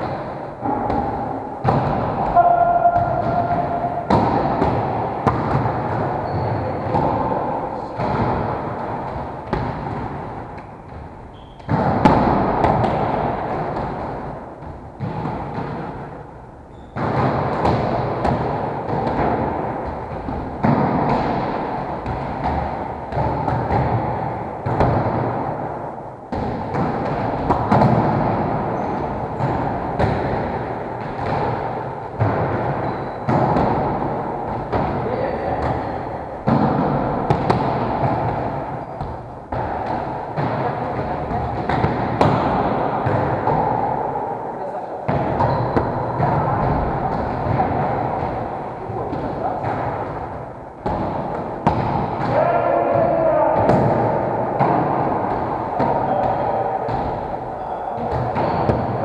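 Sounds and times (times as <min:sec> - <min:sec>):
volleyballs thudding on wooden floor: 0:00.0 - 0:44.4, 0:45.0 - 0:59.0.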